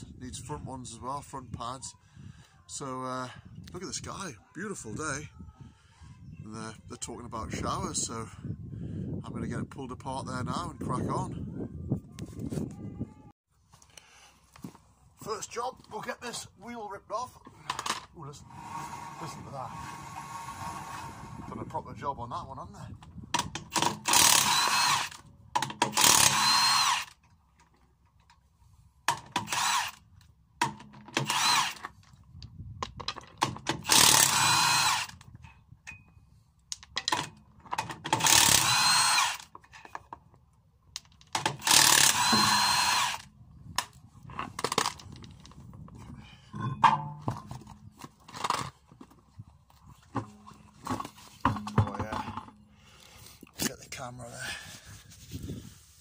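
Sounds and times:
impact wrench undoing wheel nuts: 23.4s - 27.2s, 29.1s - 30.0s, 30.6s - 32.2s, 33.0s - 36.0s, 36.8s - 40.2s, 41.0s - 49.1s, 50.0s - 53.0s.

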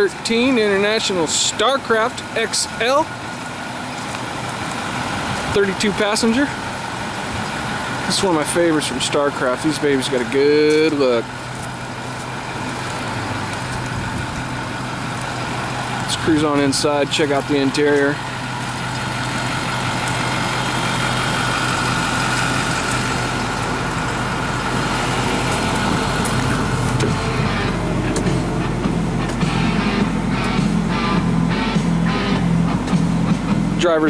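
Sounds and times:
bus engine idling: 0.0s - 34.0s.

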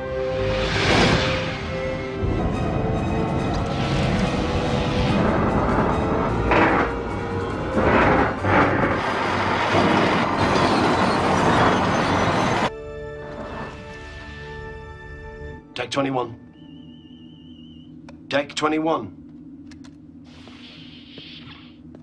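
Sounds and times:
tense orchestral music: 0.0s - 17.6s.

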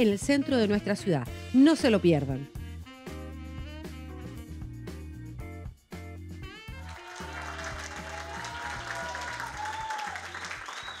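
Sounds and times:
band music with bass: 0.0s - 11.0s
crowd applauding: 6.7s - 11.0s.

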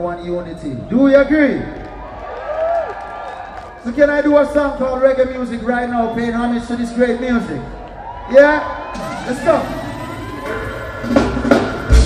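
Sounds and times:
reggae band playing: 8.8s - 12.0s.

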